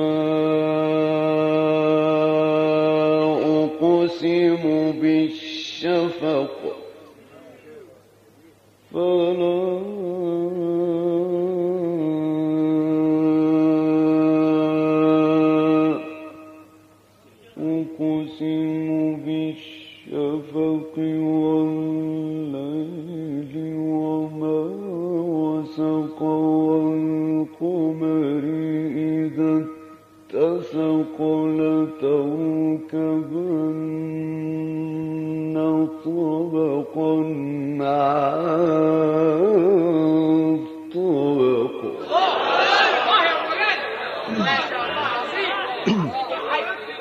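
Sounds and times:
man chanting melodically: 0.0s - 8.2s, 8.9s - 42.1s.

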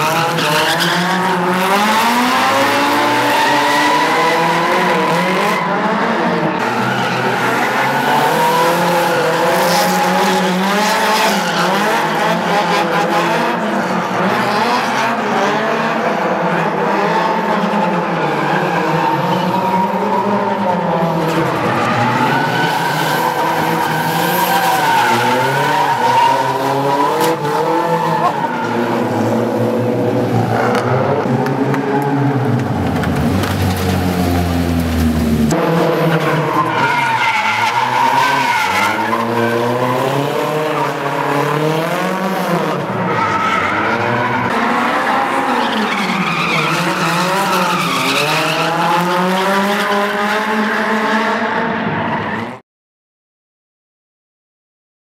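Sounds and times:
car engines revving: 0.0s - 52.6s
tyres skidding and squealing: 0.0s - 52.6s.

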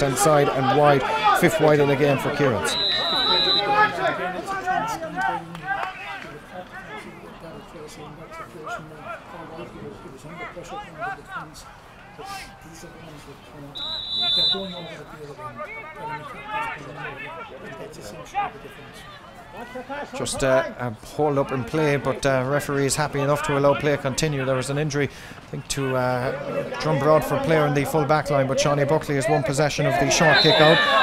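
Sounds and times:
players and spectators shouting: 0.0s - 12.8s, 13.7s - 24.9s, 25.7s - 31.0s.

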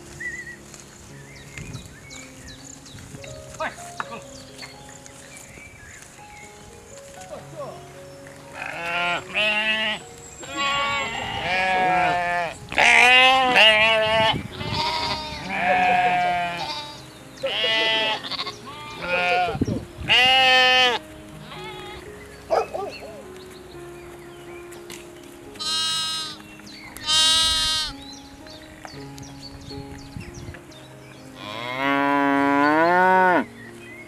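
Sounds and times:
goats bleating: 8.5s - 22.1s, 25.6s - 26.4s, 27.0s - 27.9s.

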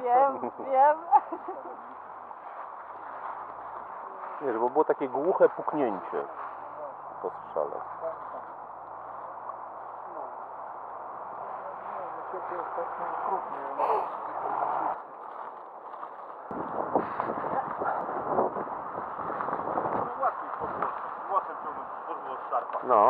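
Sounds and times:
footsteps in dry leaves: 1.3s - 22.6s
men talking: 4.2s - 8.6s, 20.0s - 23.0s.

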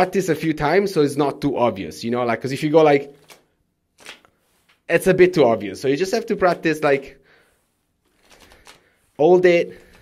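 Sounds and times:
playing cards riffled: 3.2s - 4.8s, 8.1s - 9.2s.

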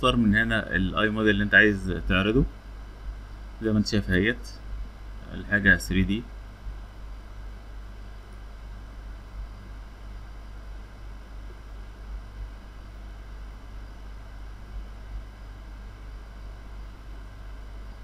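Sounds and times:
low hum: 0.0s - 18.0s.

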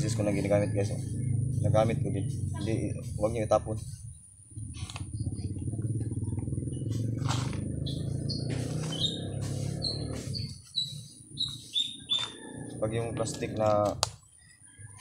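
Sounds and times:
steady low rumble: 0.0s - 13.4s
small bird chirping: 0.0s - 15.0s.

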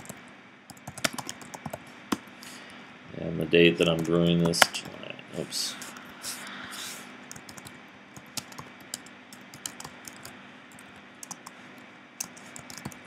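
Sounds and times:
typing on computer keyboard: 0.0s - 2.2s, 7.3s - 11.5s, 12.2s - 13.0s.

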